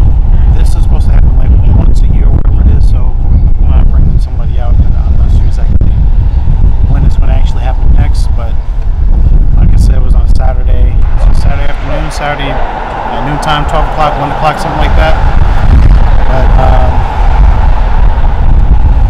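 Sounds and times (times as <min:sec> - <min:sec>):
low rumble of passing vehicles: 0:00.0 - 0:19.0
man's voice: 0:00.3 - 0:05.8, 0:09.6 - 0:15.2, 0:16.2 - 0:17.0.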